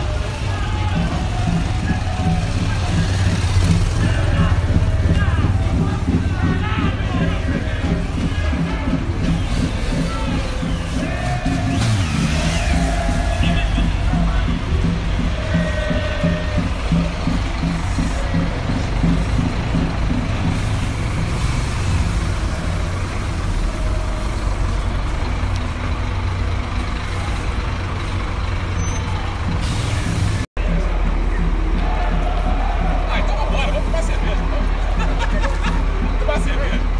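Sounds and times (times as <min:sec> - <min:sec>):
diesel coach engine rumbling: 0:00.0 - 0:36.9
voices: 0:00.0 - 0:36.9.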